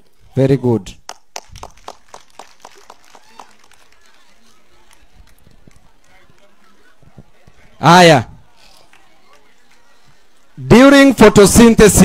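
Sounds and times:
hands clapping: 1.0s - 7.7s, 8.6s - 10.6s.

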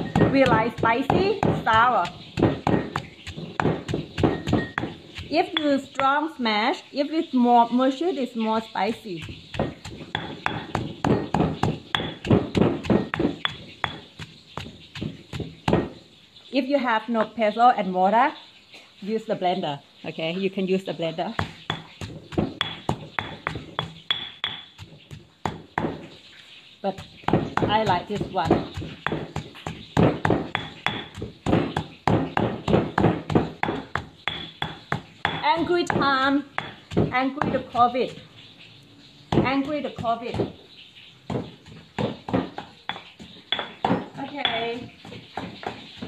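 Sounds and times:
stone pestle pounding in mortar: 0.0s - 6.2s, 8.9s - 16.0s, 21.4s - 26.1s, 27.0s - 38.0s, 39.3s - 40.6s, 41.2s - 46.0s.

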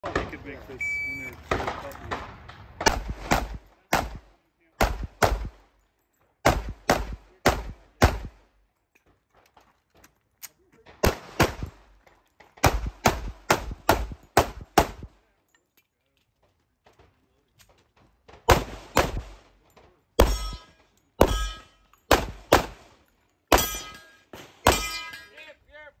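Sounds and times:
pistol shots: 1.2s - 5.6s, 6.4s - 8.4s, 10.9s - 11.9s, 12.6s - 15.2s, 18.4s - 19.6s, 20.2s - 25.2s
metallic ring of steel plates: 20.2s - 22.1s, 23.6s - 25.5s.

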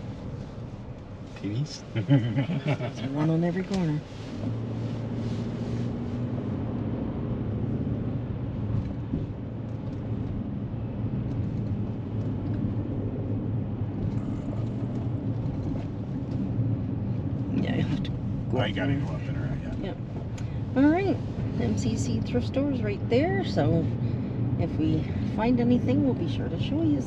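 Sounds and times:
car engine and tyre drone: 0.0s - 27.0s.

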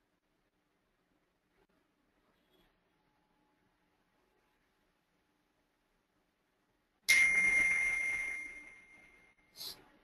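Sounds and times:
bell-like ding: 7.1s - 9.4s.

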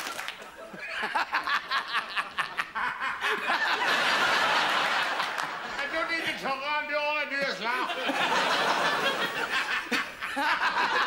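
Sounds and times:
studio audience laughing: 0.4s - 6.4s, 7.4s - 11.0s.

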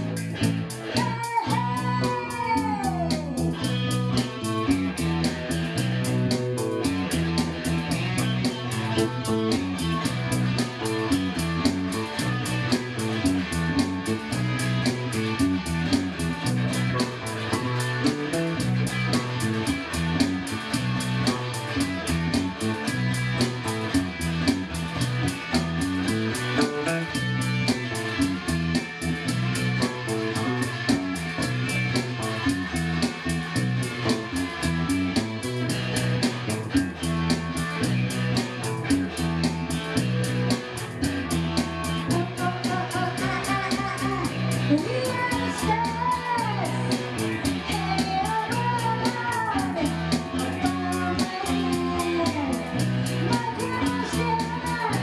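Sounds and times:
electric bass line: 0.0s - 55.0s
electric guitar playing: 0.0s - 55.0s
high sliding guitar notes: 0.0s - 55.0s.

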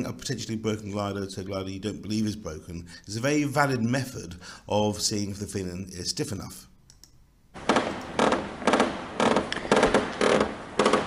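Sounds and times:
glider tailplane creaking: 7.6s - 11.0s.

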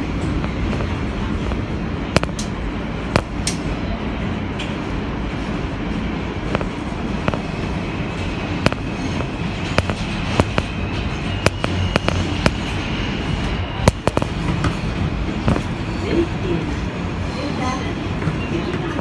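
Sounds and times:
subway train rumbling in tunnel: 0.0s - 19.0s.

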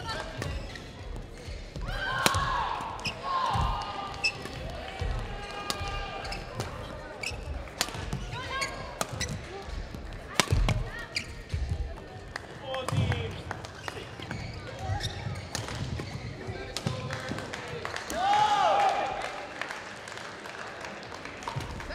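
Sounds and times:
shoes squeaking on court floor: 0.1s - 2.0s, 4.1s - 4.6s, 5.4s - 9.7s, 10.8s - 11.8s, 13.6s - 16.6s.

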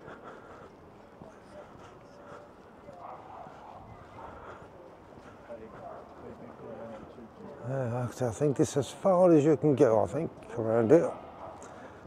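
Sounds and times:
faint background voices: 0.0s - 12.0s
footsteps on paving: 0.0s - 12.0s.

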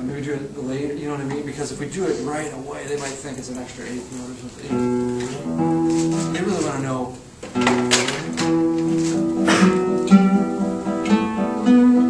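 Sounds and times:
classical guitar playing: 4.7s - 6.7s, 7.5s - 12.0s.

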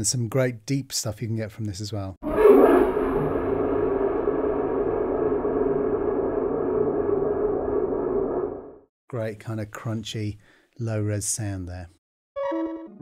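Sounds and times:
crunchy electric guitar drone: 2.3s - 8.8s.

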